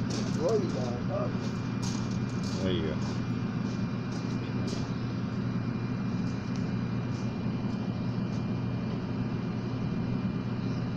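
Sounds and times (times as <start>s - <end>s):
low machine hum: 0.0s - 10.9s.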